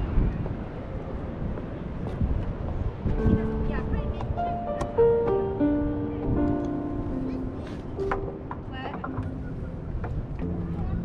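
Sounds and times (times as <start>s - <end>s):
wind rumble on microphone: 0.0s - 11.0s
bowed cello melody: 3.1s - 11.0s.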